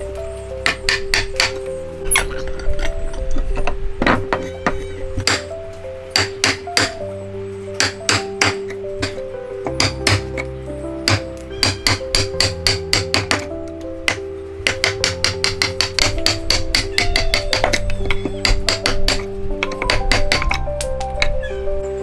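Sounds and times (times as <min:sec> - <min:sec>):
background music: 0:00.0 - 0:22.0
chisel knocking into wood: 0:07.8 - 0:10.3, 0:11.1 - 0:13.5.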